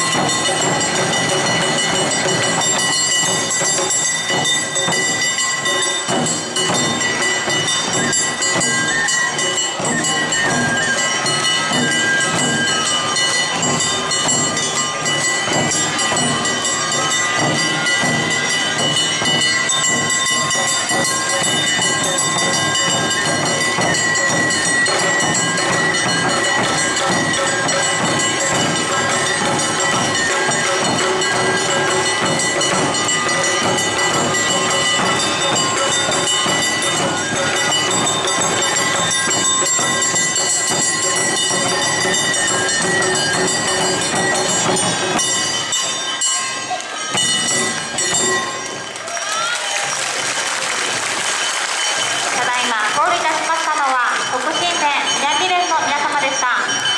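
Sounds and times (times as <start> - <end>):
taiko drums beaten with sticks: 0.0 - 50.0, 50.8 - 56.9.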